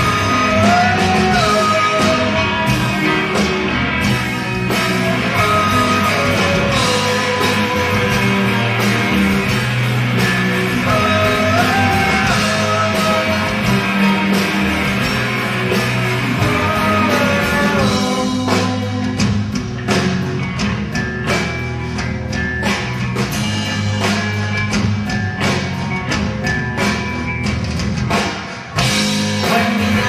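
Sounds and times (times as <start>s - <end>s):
live rock band playing: 0.0s - 30.0s.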